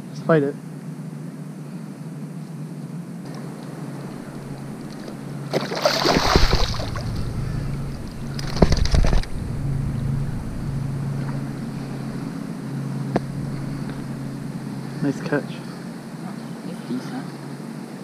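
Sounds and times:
steady low hum: 0:03.2 - 0:18.0
fish splashing in water: 0:04.0 - 0:09.5.

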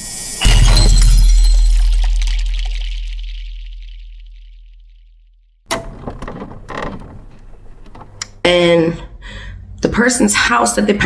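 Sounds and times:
synthetic hum and glassy shimmer: 0:00.0 - 0:05.1.

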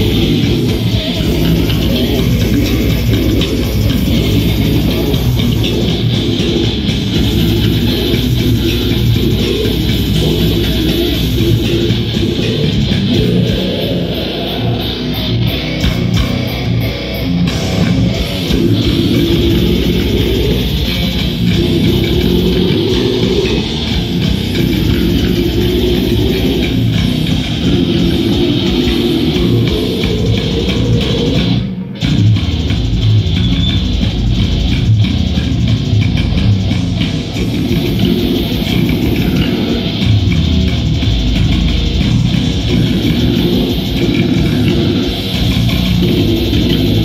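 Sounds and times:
vocalist growling: 0:00.0 - 0:15.9, 0:17.5 - 0:32.2, 0:37.3 - 0:47.0
bass guitar: 0:00.0 - 0:47.0
electric guitar: 0:00.0 - 0:47.0
heavy metal band playing: 0:00.0 - 0:47.0.

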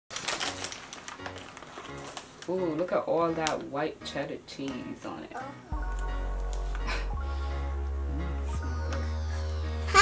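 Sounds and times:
snack bags crinkling: 0:00.1 - 0:03.6.

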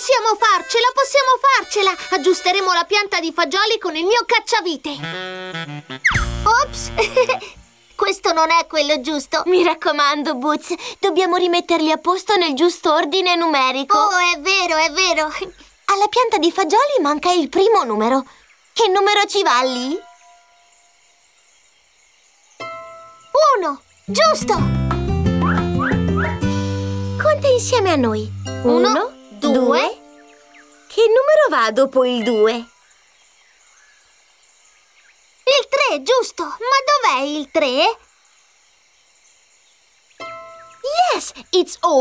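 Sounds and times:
faint steady high hiss: 0:00.0 - 0:24.7, 0:26.5 - 0:42.0.

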